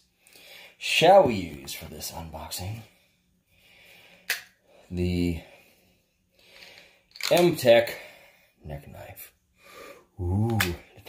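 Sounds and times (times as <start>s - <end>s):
man's voice: 10.2s - 10.8s.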